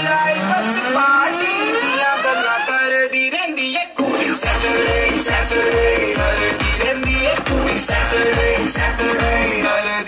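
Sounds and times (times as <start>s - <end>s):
dance music: 0.0s - 10.0s.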